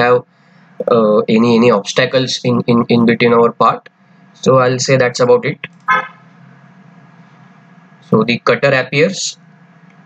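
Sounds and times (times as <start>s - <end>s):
background hiss and hum: 0.0s - 10.0s.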